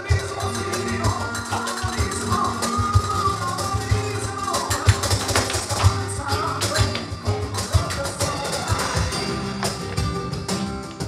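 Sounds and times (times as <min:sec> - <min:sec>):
flamenco guitar playing: 0:00.0 - 0:11.0
sharp percussive strikes: 0:00.0 - 0:11.0.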